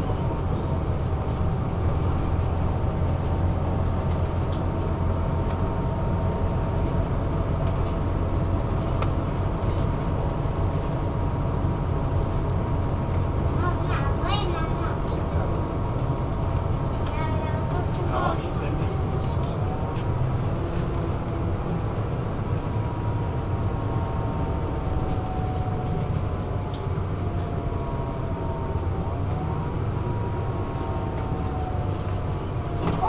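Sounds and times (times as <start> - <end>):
bus drivetrain and road rumble: 0.0 - 33.0.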